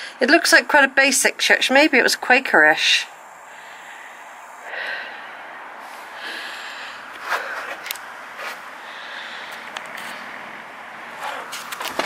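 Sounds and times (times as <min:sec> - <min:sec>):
faint steady hiss: 0:00.0 - 0:10.9
person exhaling: 0:03.4 - 0:07.8.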